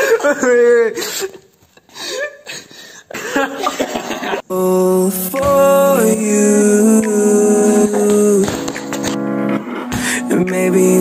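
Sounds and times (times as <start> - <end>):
music with long held notes: 4.5 - 11.0.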